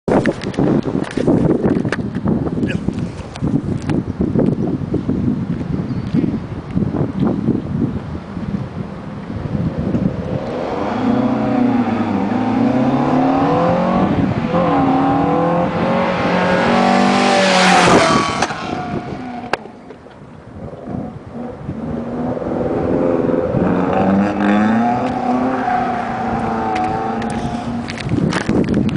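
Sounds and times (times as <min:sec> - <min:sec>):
car engine revving: 0:09.8 - 0:19.7, 0:20.7 - 0:28.1.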